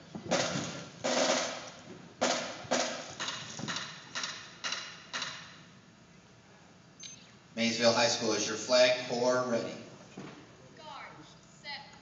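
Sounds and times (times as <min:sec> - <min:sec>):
drum hits in reverberant gym: 0:00.2 - 0:05.7.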